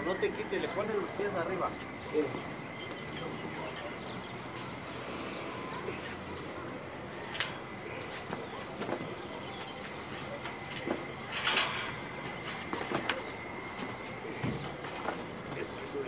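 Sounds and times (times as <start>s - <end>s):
metal knocks and clanks: 10.8s - 13.2s.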